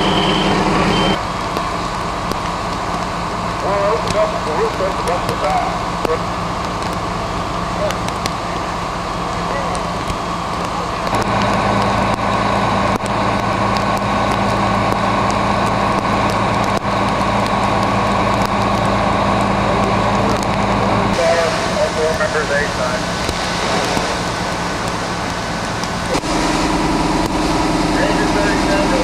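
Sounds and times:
diesel engine humming: 0:00.0 - 0:29.0
hiss of hoses and fire: 0:00.0 - 0:29.0.

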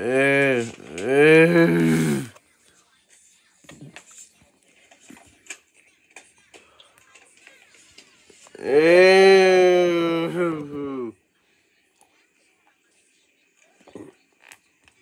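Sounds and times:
person holding long vocal sound: 0:00.0 - 0:02.3, 0:08.6 - 0:11.1.

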